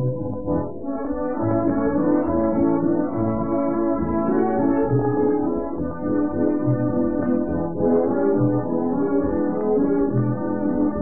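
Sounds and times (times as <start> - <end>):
muffled dance-band waltz on record: 0.0 - 11.0.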